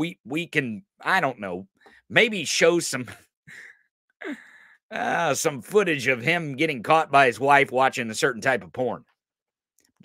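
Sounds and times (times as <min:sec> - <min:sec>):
man breathing: 0:03.5 - 0:04.9.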